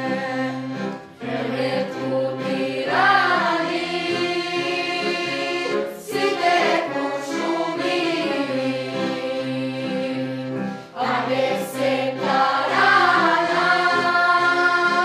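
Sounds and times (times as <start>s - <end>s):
accordion accompaniment: 0.0s - 15.0s
girls singing: 0.0s - 15.0s.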